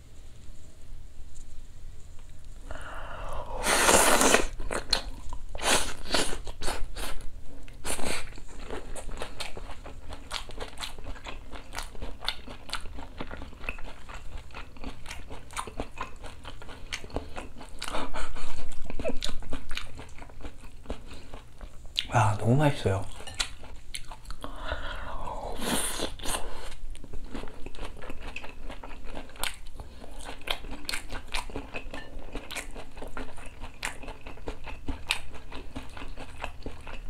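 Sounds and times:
crunchy biting and chewing: 25.6s - 37.0s.

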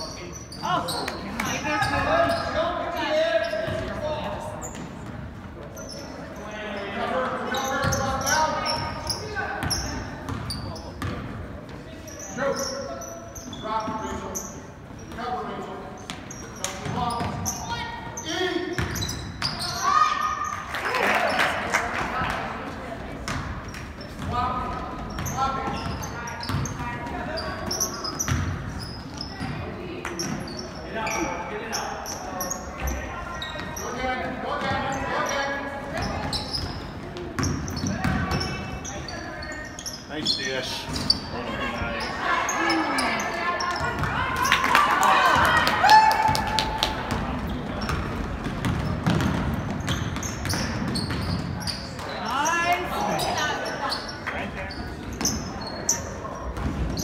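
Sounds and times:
players and spectators calling out: 0.0s - 4.7s, 11.9s - 23.0s, 24.0s - 48.3s, 49.9s - 57.0s
basketball bouncing on wooden floor: 47.0s - 52.1s.

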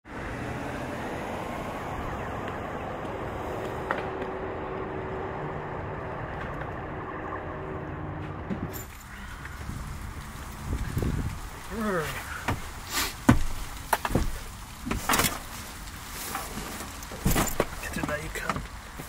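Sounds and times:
vehicle rumble: 0.0s - 19.0s.

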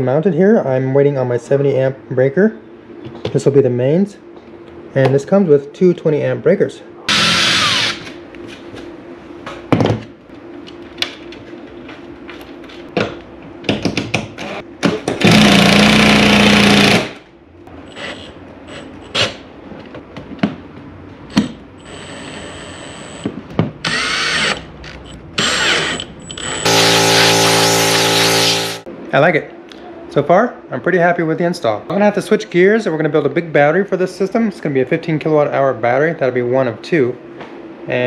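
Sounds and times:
cordless drill driving screws: 7.1s - 8.0s, 23.8s - 24.6s, 25.4s - 28.8s.

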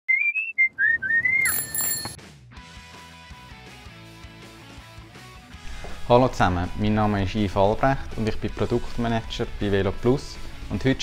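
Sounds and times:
whistled jingle: 0.1s - 2.2s
high ringing tone: 1.4s - 2.2s.

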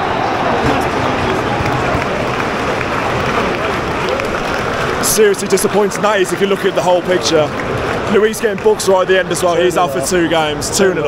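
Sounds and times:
stadium crowd applauding: 0.0s - 11.0s.

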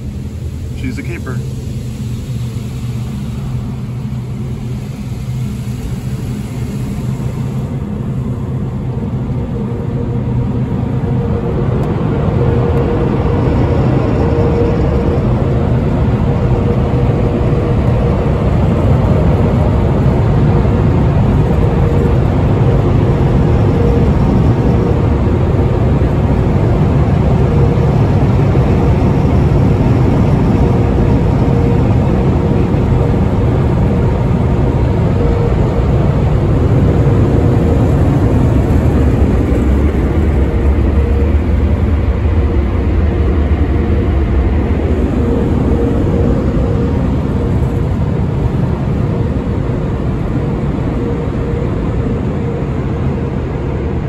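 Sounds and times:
air dryer blowers rushing: 0.0s - 8.4s.

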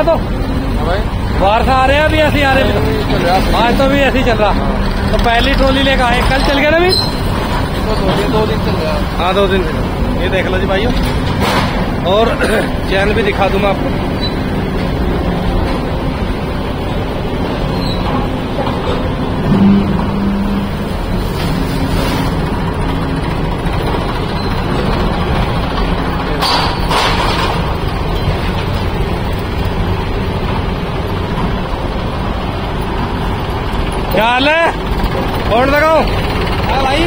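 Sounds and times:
diesel tractor engines running: 0.0s - 37.0s.

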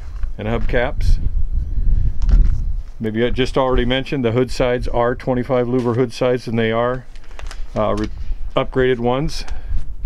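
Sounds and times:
wind buffeting microphone: 0.0s - 5.8s, 7.4s - 10.0s.

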